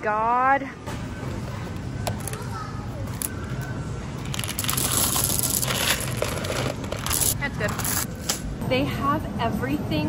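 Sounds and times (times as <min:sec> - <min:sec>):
plastic bag crinkling: 0:04.3 - 0:08.1.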